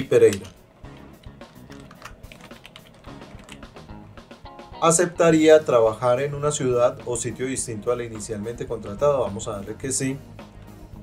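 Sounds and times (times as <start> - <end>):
quiet background music: 0.0 - 11.0
computer keyboard key clicks: 0.3 - 3.7.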